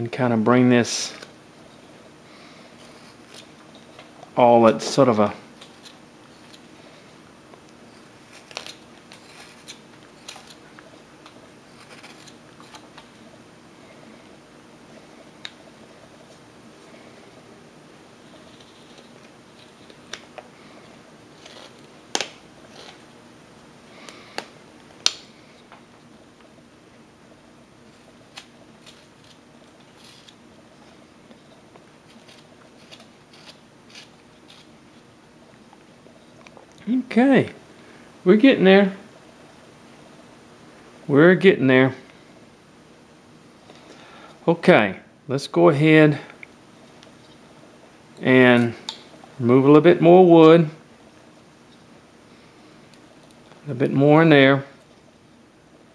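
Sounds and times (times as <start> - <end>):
faint steady hum: 0.0 - 55.9
knife carving wood: 2.8 - 4.0, 5.5 - 6.7, 7.9 - 13.1, 18.2 - 20.3, 21.3 - 23.0, 28.0 - 30.4, 32.0 - 35.0.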